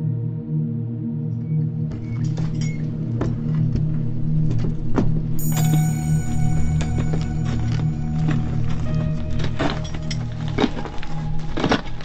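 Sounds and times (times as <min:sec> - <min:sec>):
high sustained tones: 0:05.4 - 0:11.3
low drone: 0:05.4 - 0:12.0.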